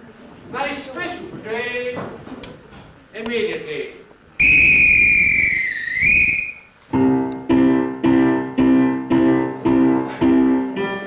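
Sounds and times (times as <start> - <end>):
police whistle blast: 4.4 - 6.7
piano chords: 6.9 - 11.0.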